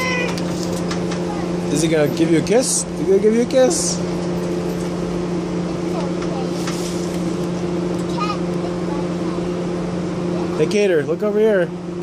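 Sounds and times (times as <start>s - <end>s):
machine humming: 0.0s - 12.0s.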